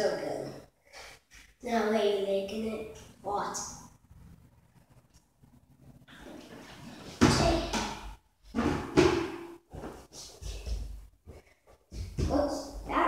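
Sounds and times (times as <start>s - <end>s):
plastic bucket banging on wooden floor: 7.2s - 9.5s.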